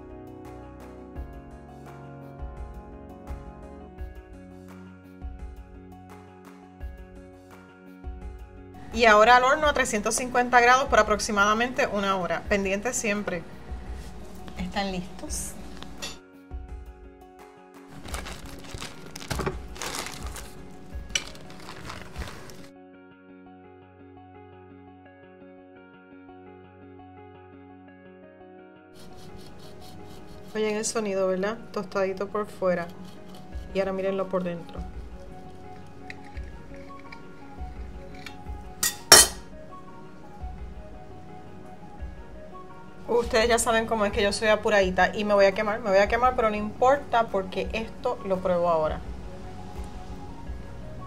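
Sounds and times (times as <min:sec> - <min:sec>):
background music: 0:00.0 - 0:51.0
metal knife clinking on glass: 0:38.2 - 0:39.5.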